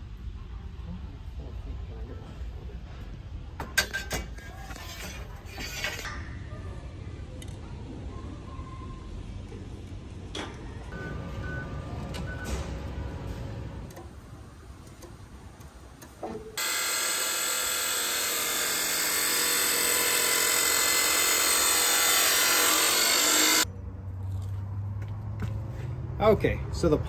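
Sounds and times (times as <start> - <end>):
chop saw cutting steel: 16.6 - 23.7.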